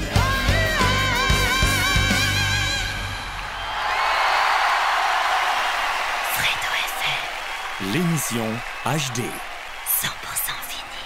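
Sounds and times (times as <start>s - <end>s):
audience applause: 3.3s - 11.0s.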